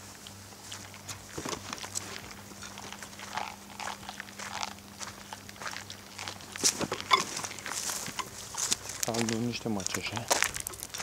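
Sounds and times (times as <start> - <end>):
footsteps crunching in dry grass: 0.0 - 11.0
brushing through weeds: 6.1 - 11.0.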